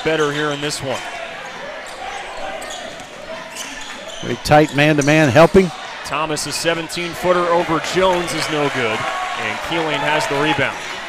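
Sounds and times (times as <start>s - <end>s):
murmur of crowd voices: 0.0s - 11.0s.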